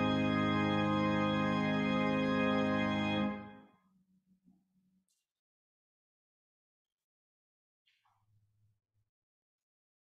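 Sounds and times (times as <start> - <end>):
church organ chord: 0.0 - 3.6.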